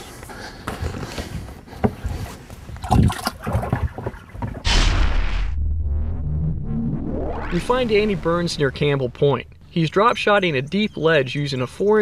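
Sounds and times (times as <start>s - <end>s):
loud whoosh: 4.6s - 10.7s
low hum: 4.6s - 11.8s.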